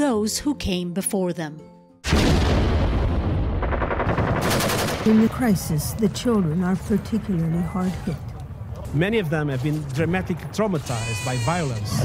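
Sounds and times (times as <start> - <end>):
rapid automatic gunfire: 3.6 - 5.4.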